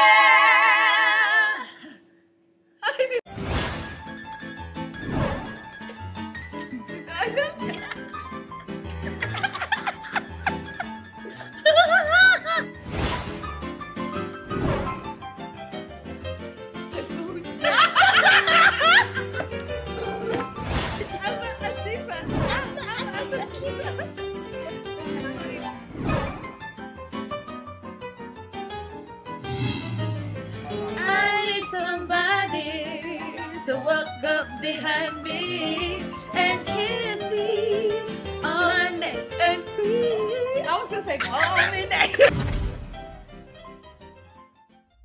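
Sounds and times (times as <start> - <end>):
background music: 3.3 - 45.0
loud laughter with squeals: 17.6 - 19.5
unaccompanied voices singing: 30.8 - 33.4, 34.7 - 40.5.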